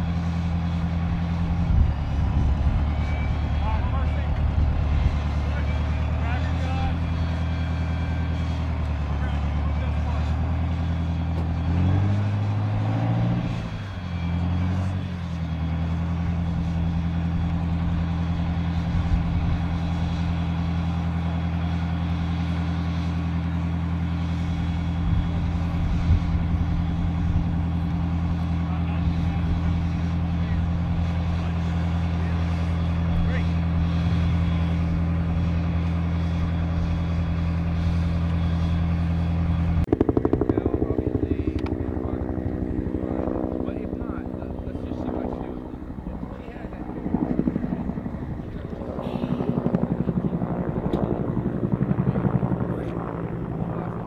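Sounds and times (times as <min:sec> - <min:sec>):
helicopter flying overhead: 0:00.0 - 0:54.0.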